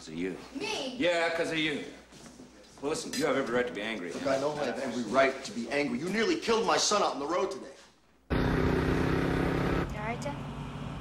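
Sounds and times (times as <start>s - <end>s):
car engine running hard: 8.3s - 11.0s.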